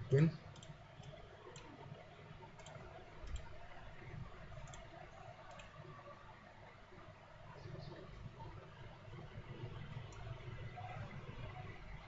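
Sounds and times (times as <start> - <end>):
low background hum: 0.0 - 12.0
computer mouse clicking: 0.5 - 1.8, 2.5 - 3.6, 4.6 - 5.8.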